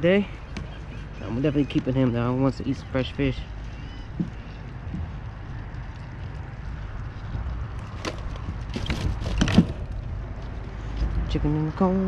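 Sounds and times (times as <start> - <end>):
low handling rumble: 0.0 - 12.0
sharp clicks and scrapes: 7.8 - 10.1.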